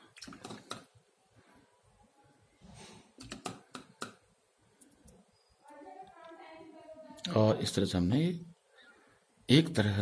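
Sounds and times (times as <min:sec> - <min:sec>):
brush tapping on paper: 0:03.3 - 0:04.2.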